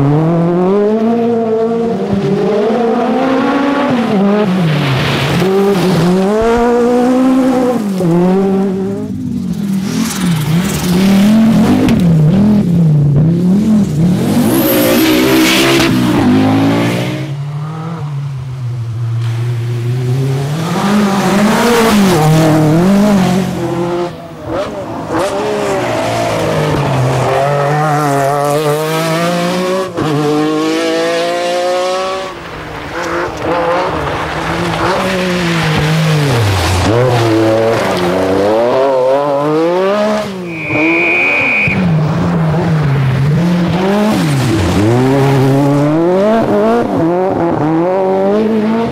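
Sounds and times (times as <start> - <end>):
rally car engines at full throttle: 0.0 - 48.9.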